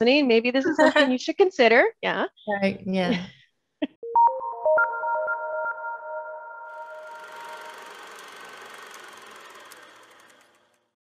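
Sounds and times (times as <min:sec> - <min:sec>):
bell-like synthesized tones: 0:04.0 - 0:07.6
shimmering wash: 0:06.7 - 0:09.6.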